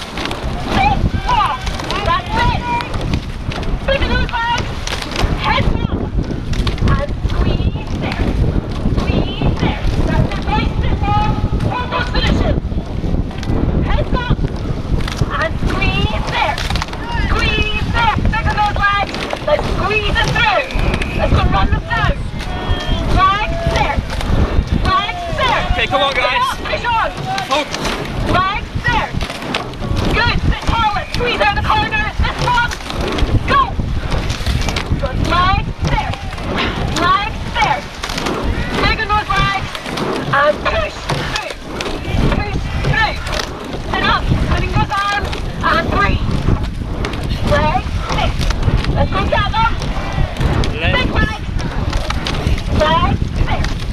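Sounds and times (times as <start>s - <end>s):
rushing water: 0.0s - 53.9s
wind buffeting microphone: 0.0s - 53.9s
people shouting: 0.5s - 3.0s, 15.7s - 29.1s, 29.9s - 46.4s, 49.0s - 53.6s.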